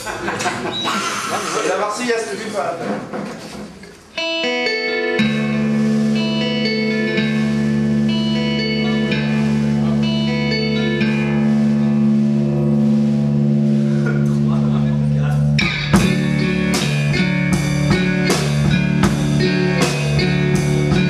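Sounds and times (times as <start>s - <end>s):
picked electric guitar notes: 4.2s - 21.0s
low droning guitar chord: 4.3s - 21.0s.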